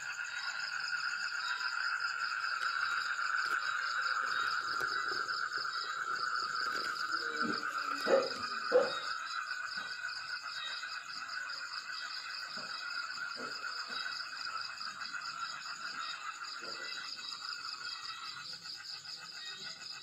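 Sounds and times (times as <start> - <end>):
frogs and insects calling: 0.0 - 20.0.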